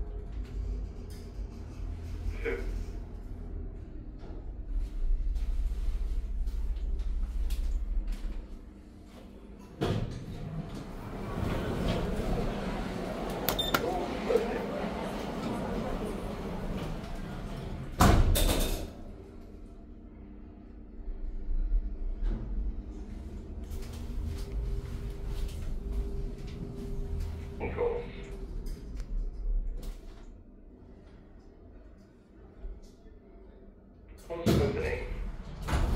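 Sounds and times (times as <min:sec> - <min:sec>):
sliding doors opening: 0:09.8 - 0:18.6, 0:35.2 - 0:35.9
lift humming: 0:10.2 - 0:18.0
voices in a concourse: 0:11.0 - 0:18.0.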